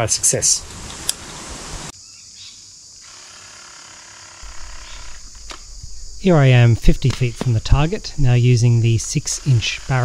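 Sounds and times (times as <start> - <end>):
insects droning: 1.9 - 10.0
low bumpy rumble: 4.4 - 9.0.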